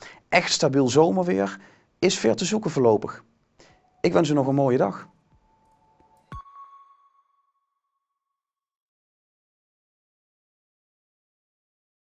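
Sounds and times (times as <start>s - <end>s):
high electronic ping: 4.9s - 7.6s.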